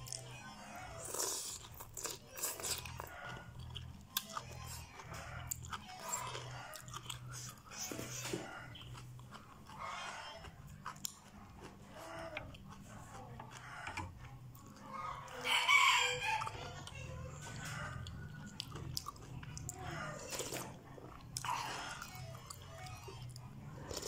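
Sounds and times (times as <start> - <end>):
chewing: 0.0 - 24.0.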